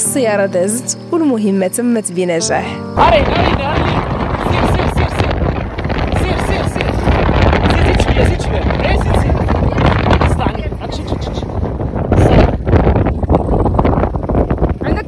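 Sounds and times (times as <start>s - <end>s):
wind buffeting microphone: 3.0s - 15.0s.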